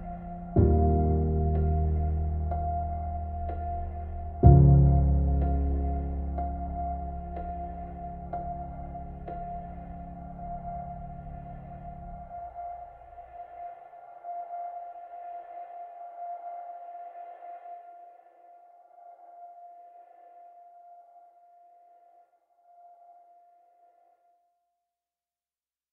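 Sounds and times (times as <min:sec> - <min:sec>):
ambient music with ringing tone: 0:00.0 - 0:24.3.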